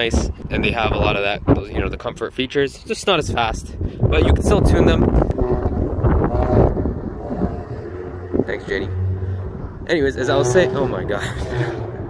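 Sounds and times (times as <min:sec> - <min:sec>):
wind buffeting microphone: 0:00.0 - 0:12.0
faint pitched sounds: 0:04.4 - 0:12.0.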